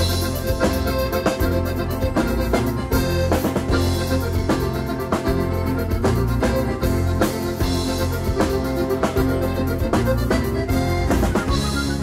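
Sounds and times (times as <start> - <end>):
band playing dance melody: 0.0 - 12.0
steady drum beat: 0.0 - 12.0.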